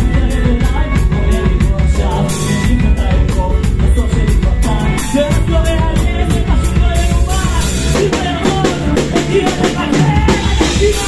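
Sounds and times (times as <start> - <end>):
live rock band playing: 0.0 - 11.0
man singing: 0.0 - 11.0.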